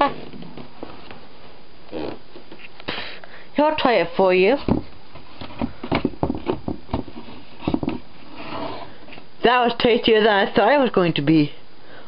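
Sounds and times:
small objects tapping and knocking: 4.7 - 8.0.

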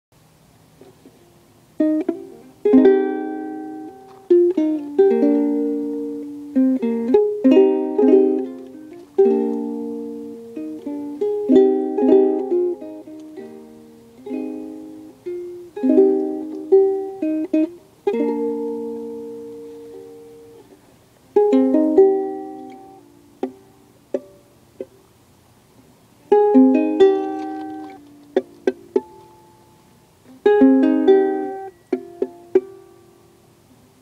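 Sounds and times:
ukulele strumming chords: 0.7 - 34.0.

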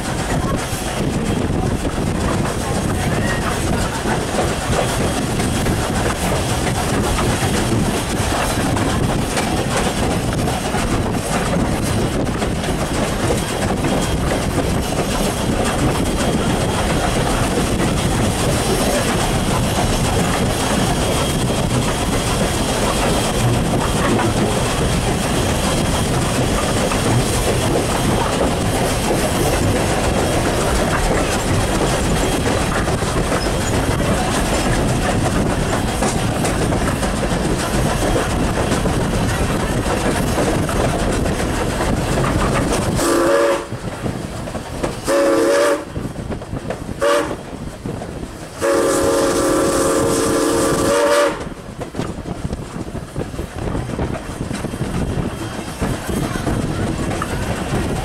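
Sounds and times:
steam locomotive wheels rumbling: 0.0 - 58.0
steam whistle blasts: 43.0 - 43.7, 45.1 - 45.9, 47.0 - 47.4, 48.6 - 51.5.

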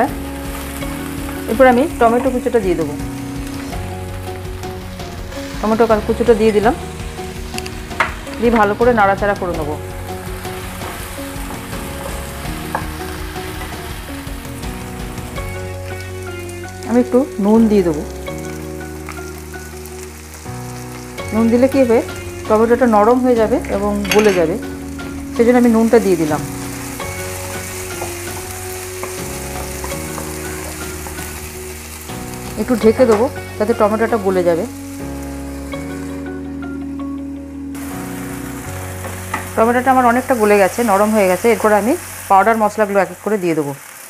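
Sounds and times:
vegetables sizzling in frying pan: 0.0 - 37.2, 37.8 - 44.0.

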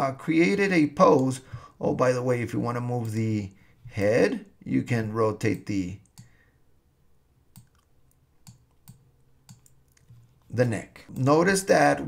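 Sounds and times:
computer mouse clicks: 5.4 - 6.4, 7.5 - 10.5.

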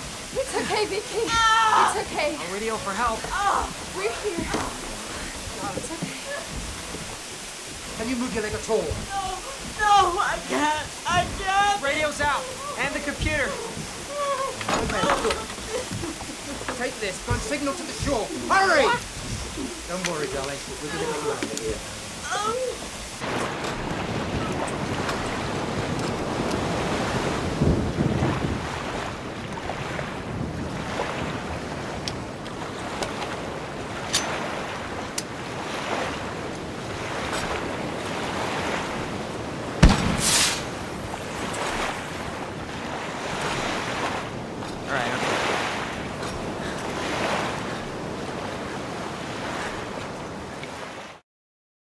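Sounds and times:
waves: 0.0 - 51.2
wind blowing: 0.0 - 51.2
loud sharp crack: 39.8 - 40.8.

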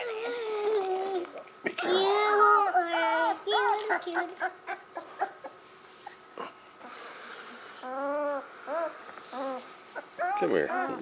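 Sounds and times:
puppy whimpering: 1.9 - 6.2, 7.8 - 11.0.

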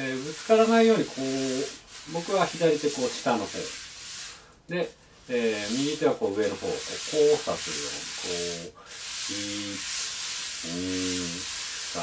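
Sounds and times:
wire brushes swishing on drum: 0.0 - 4.4, 5.2 - 12.0.

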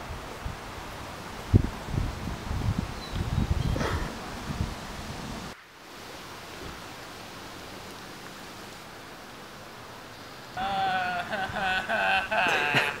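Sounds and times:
background hiss: 0.0 - 13.0.

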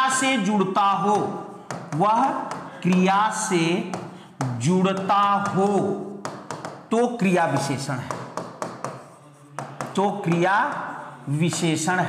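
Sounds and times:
sharp taps on hard surface: 1.1 - 12.0.

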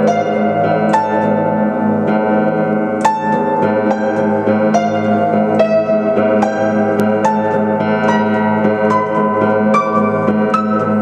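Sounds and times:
upright piano played slowly: 0.0 - 11.0.

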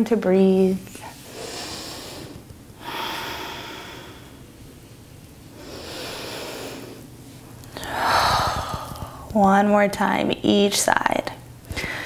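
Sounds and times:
woman breathing deeply: 1.1 - 4.9, 5.5 - 9.3, 11.7 - 12.0.

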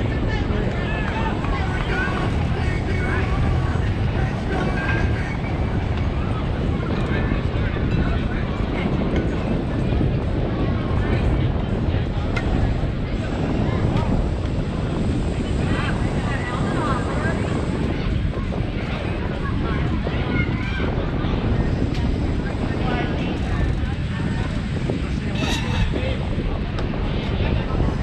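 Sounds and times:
distant indistinct voices: 0.0 - 28.0
wind on microphone: 0.0 - 28.0.

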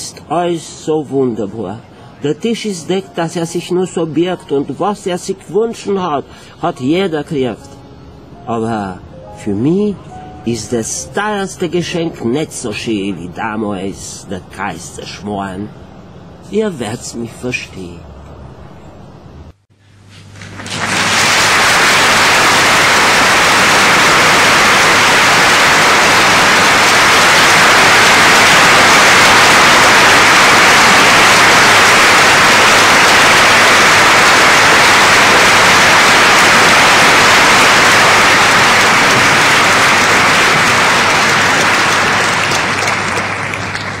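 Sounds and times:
audience applauding: 20.4 - 44.0.

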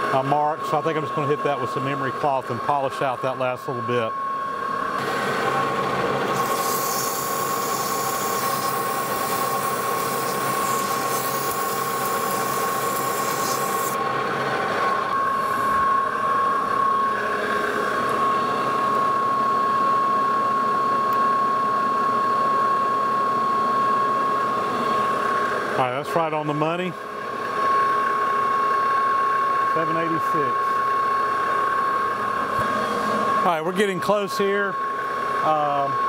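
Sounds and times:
metal lathe whine: 0.0 - 36.0.

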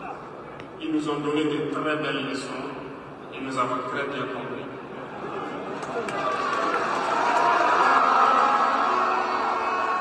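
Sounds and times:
large crowd cheering: 5.4 - 10.0.

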